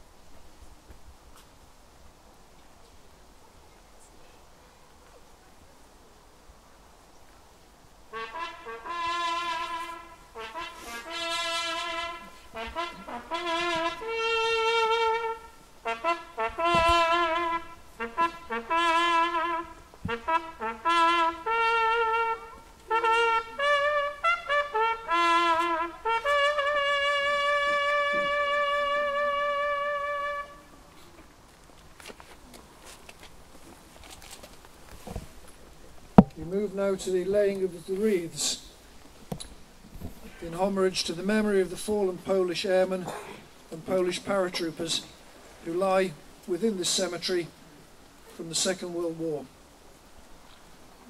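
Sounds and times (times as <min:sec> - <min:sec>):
solo trumpet bugle call: 0:08.1 - 0:31.1.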